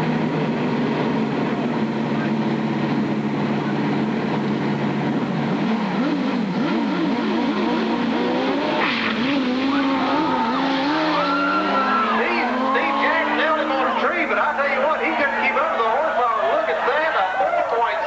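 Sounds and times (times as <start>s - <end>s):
motorcycle engines revving: 0.0s - 18.0s.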